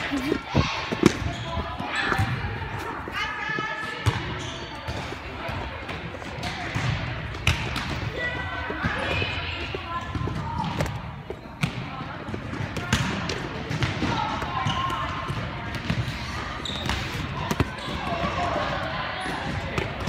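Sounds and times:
balls bouncing on gym floor: 0:00.0 - 0:20.0.

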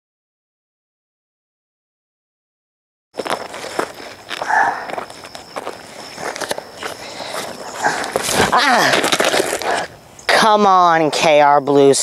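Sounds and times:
footsteps crunching on gravel: 0:03.2 - 0:10.0.

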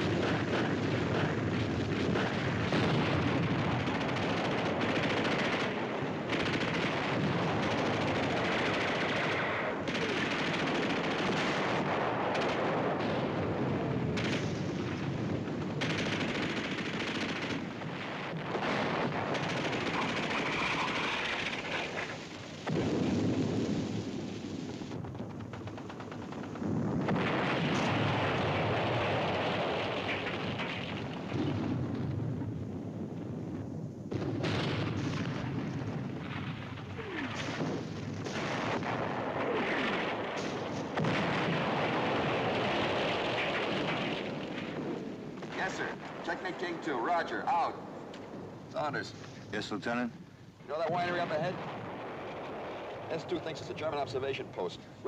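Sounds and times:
machine-gun and rifle fire: 0:00.0 - 0:32.0, 0:34.1 - 0:47.6
artillery explosions: 0:00.0 - 0:55.0.

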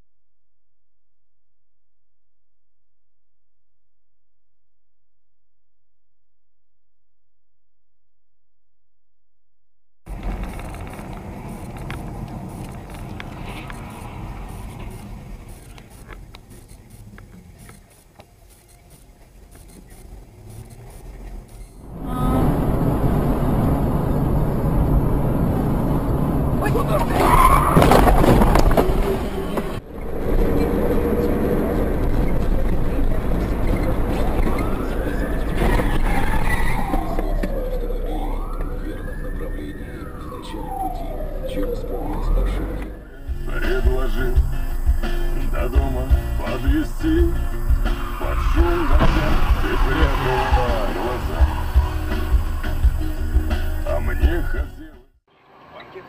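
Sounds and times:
road and engine noise: 0:10.1 - 0:56.0
emergency vehicle siren wailing: 0:21.8 - 0:43.6, 0:47.9 - 0:53.1
loud burst: 0:47.9 - 0:52.0.

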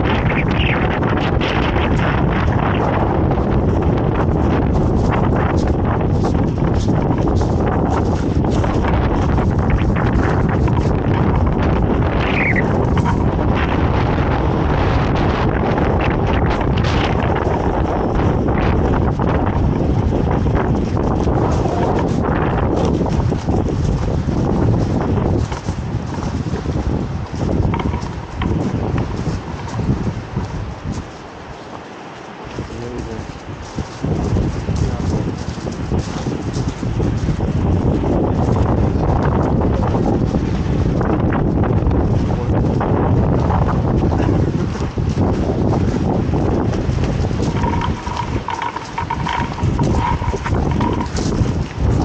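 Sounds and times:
wind buffeting microphone: 0:00.0 - 0:52.0
footsteps crunching on gravel: 0:00.9 - 0:14.8, 0:15.4 - 0:42.1, 0:43.3 - 0:52.0.

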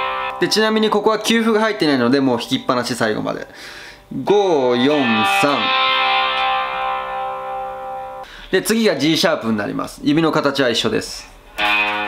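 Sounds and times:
electric guitar power chord ringing: 0:00.0 - 0:03.0, 0:04.6 - 0:08.3, 0:11.5 - 0:12.0.

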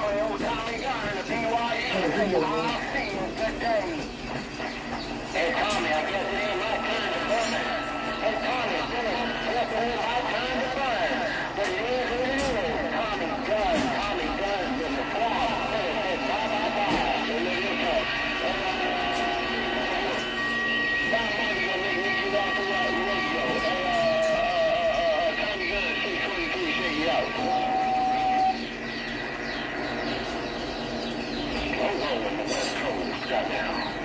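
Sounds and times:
garbled radio voices: 0:00.0 - 0:34.0
radio whistling tones: 0:04.6 - 0:30.0.

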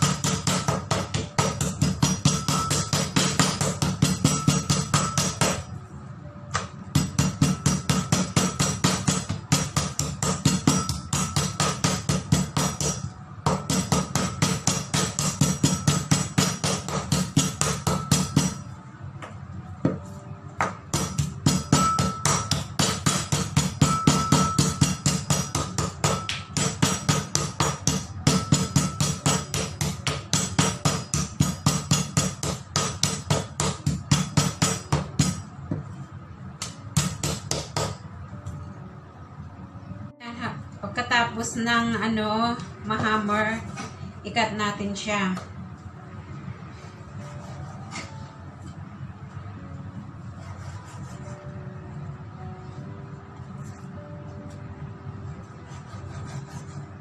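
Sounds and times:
meat mallet pounding on wooden board: 0:00.0 - 0:05.7, 0:06.6 - 0:18.6, 0:20.6 - 0:35.9, 0:36.6 - 0:38.0.

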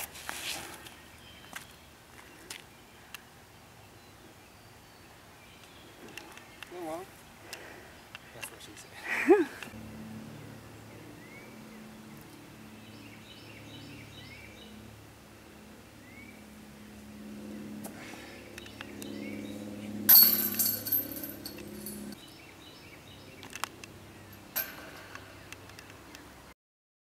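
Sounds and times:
birds chirping: 0:00.7 - 0:15.0, 0:15.6 - 0:26.4
low steady hum: 0:09.4 - 0:22.2
disc hitting basket chains: 0:20.1 - 0:22.2, 0:24.5 - 0:25.4
short metallic clink: 0:20.1 - 0:22.2, 0:24.6 - 0:25.2.

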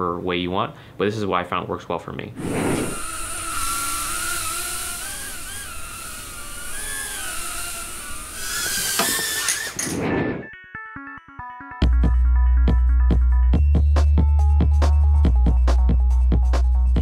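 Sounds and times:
quadcopter motors whining: 0:02.4 - 0:10.0.

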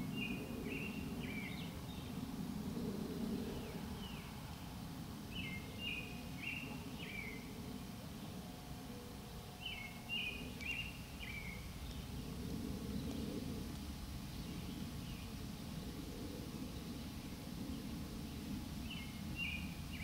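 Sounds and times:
low outdoor rumble: 0:00.0 - 0:20.0
songbird singing: 0:00.0 - 0:20.0.

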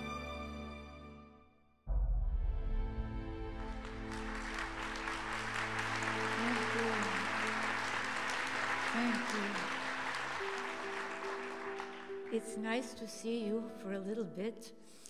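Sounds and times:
audience applauding: 0:03.5 - 0:12.6.

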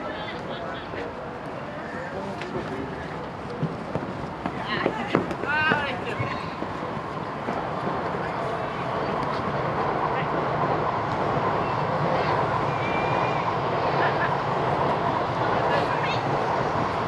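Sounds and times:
outdoor rushing noise: 0:00.0 - 0:17.0.

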